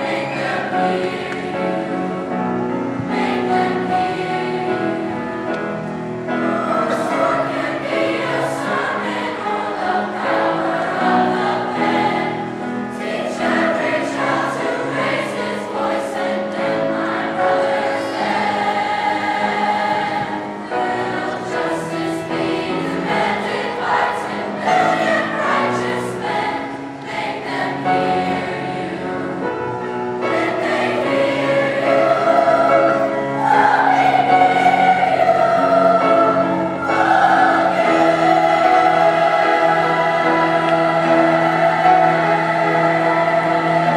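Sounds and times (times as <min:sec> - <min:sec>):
children's choir singing: 0:00.0 - 0:43.9.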